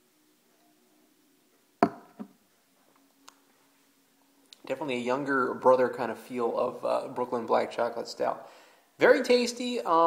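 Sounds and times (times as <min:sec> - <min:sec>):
faint steady hum: 0:00.0 - 0:10.0
sharp knock: 0:01.8 - 0:02.3.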